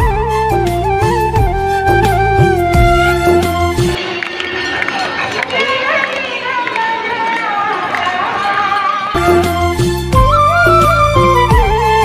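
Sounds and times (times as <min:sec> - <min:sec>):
crowd voices: 0:02.8 - 0:09.8
devotional music and singing: 0:04.0 - 0:10.2.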